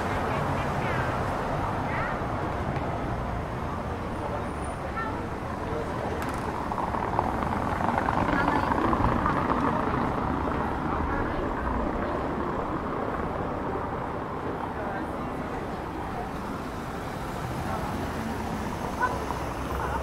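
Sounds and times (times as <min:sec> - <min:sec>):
town street noise: 0:00.0 - 0:20.0.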